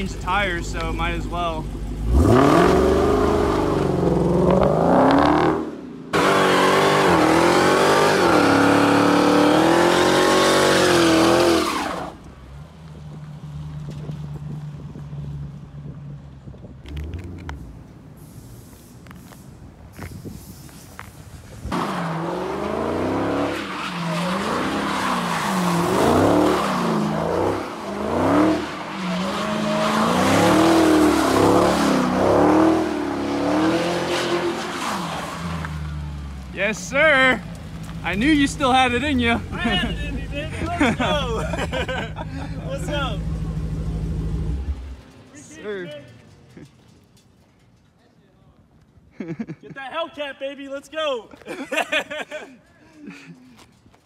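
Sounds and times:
car engine revving: 1.6 - 12.2, 21.8 - 36.4
tires squealing: 2.0 - 12.6, 20.0 - 47.0.

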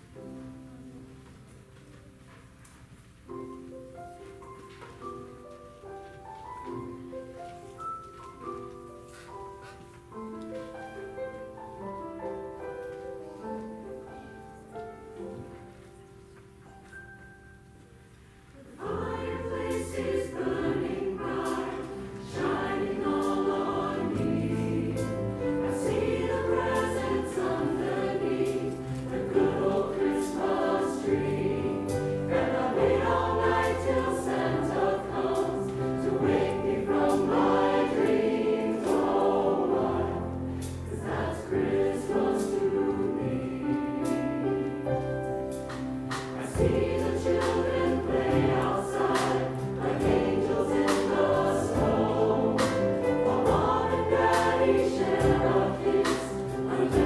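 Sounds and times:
instrumental accompaniment: 3.4 - 57.0
mixed choir singing: 18.6 - 45.0, 46.1 - 57.0.

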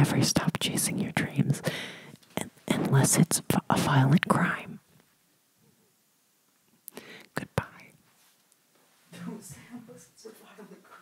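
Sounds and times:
breathy whisper: 6.9 - 8.0.

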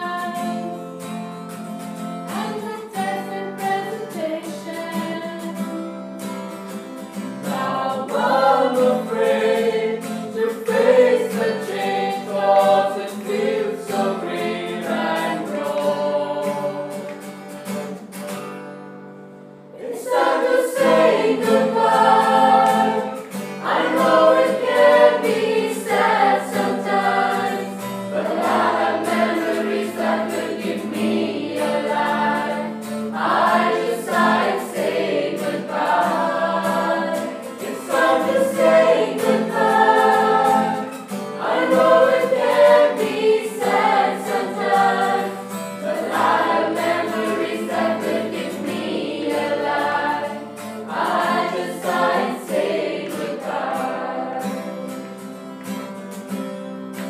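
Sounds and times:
group singing slow song: 0.0 - 1.2, 2.3 - 5.9, 6.7 - 17.4, 19.7 - 55.4.

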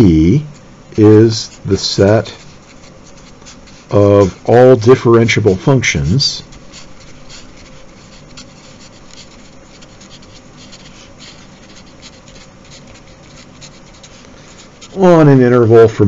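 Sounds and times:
marker writing on paper: 1.4 - 4.7, 6.0 - 15.3.

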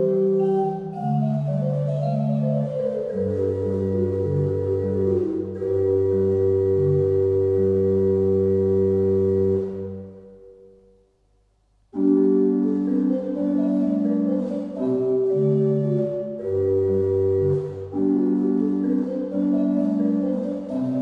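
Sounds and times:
pipe organ playing: 0.0 - 10.4, 12.0 - 21.0.

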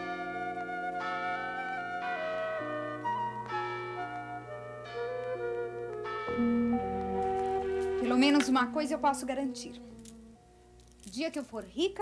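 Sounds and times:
woodwind melody: 0.0 - 10.6
sustained chords: 0.0 - 10.8.

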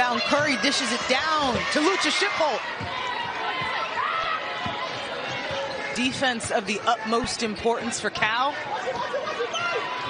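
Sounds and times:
arena crowd murmur: 0.0 - 10.0
sneaker squeaks: 2.7 - 6.8, 8.8 - 10.0.

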